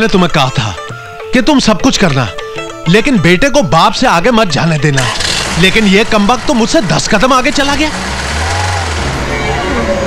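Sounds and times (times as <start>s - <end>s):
car engine droning: 5.0s - 10.0s.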